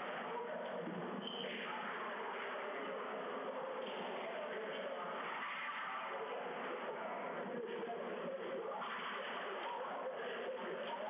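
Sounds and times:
room ambience: 0.0 - 11.0.

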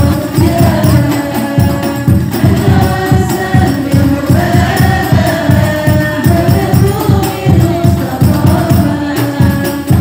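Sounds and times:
frame drums beating: 0.0 - 10.0
group singing devotional song: 0.0 - 10.0.

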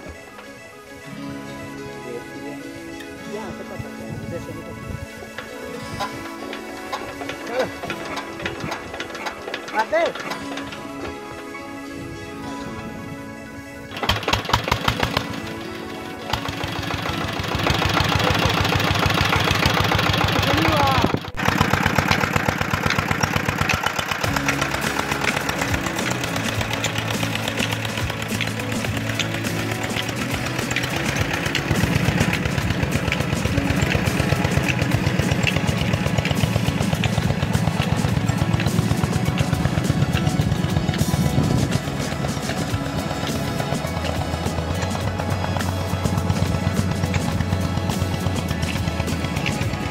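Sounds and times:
background music: 0.0 - 49.9
diesel engine chugging: 0.0 - 49.9.

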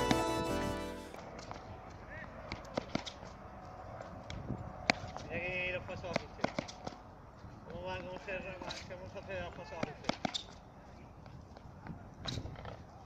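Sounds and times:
short high-pitched sound: 0.0 - 1.2
sharp taps on hard court: 6.1 - 7.0, 9.8 - 10.6.

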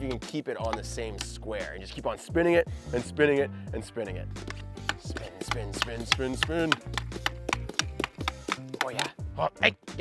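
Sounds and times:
background music: 0.0 - 10.0
hockey sticks clicking on ball: 4.4 - 9.1.

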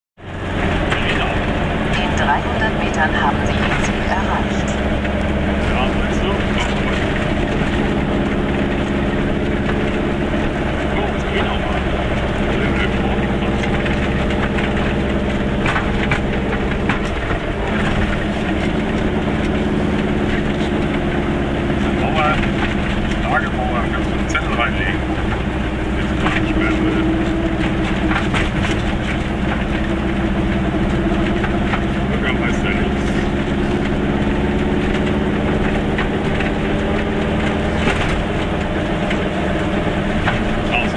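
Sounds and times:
two-stroke car engine running: 0.2 - 40.9.

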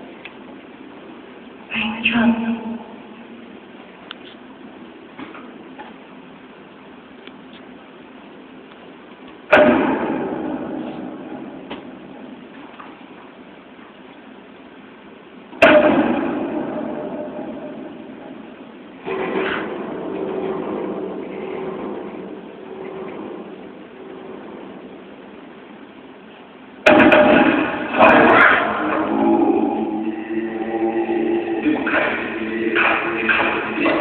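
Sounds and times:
steady low hum: 0.0 - 34.0
deep booming hits: 9.5 - 12.7, 15.6 - 25.9, 26.8 - 34.0.

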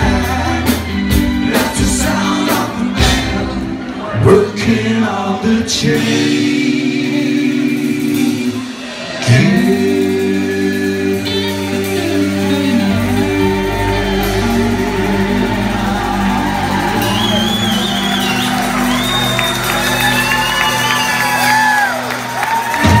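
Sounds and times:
person singing: 0.0 - 17.8
rock band sustained chord: 5.9 - 23.0.

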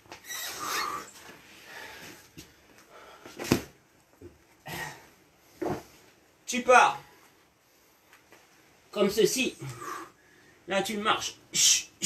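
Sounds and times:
man breathing: 0.6 - 3.5, 9.6 - 10.7.

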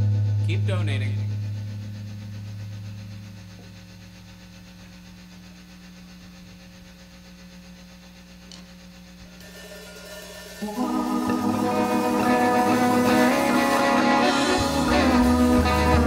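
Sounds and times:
band holding low note: 0.0 - 3.8, 9.4 - 16.0
steady hum: 0.0 - 16.0.

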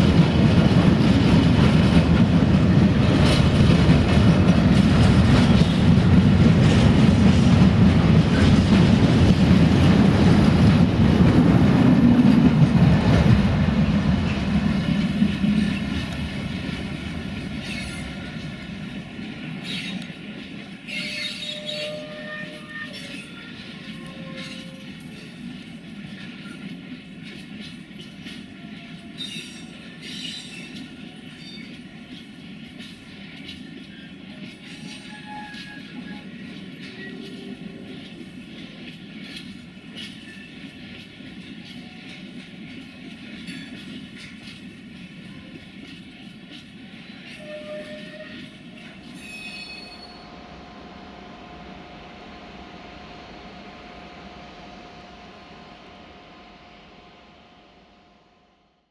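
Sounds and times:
train clanks: 0.0 - 50.6
steel wheels rumbling on rail: 0.0 - 58.0
wheel squeal: 20.9 - 24.8, 34.8 - 37.3, 47.4 - 48.5, 49.1 - 50.3
brief tone: 47.4 - 48.4.

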